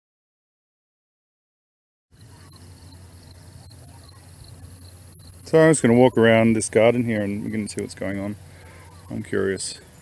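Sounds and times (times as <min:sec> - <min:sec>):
faint high-pitched chirping: 0:02.1 - 0:10.0
low hum: 0:02.2 - 0:10.0.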